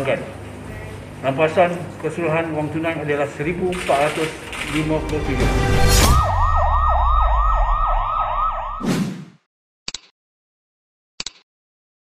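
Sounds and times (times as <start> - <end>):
low rumble: 5.0 - 8.8
short swoosh: 5.5 - 9.4
siren yelping wail: 5.8 - 8.8.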